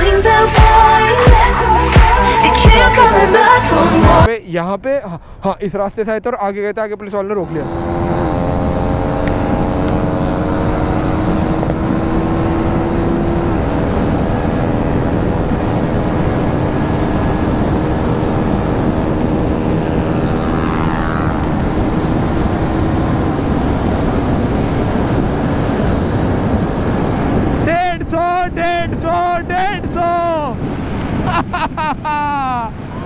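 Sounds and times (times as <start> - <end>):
motorcycle engine at high revs: 7.4 - 27.6
wind rush on microphone: 7.7 - 33.0.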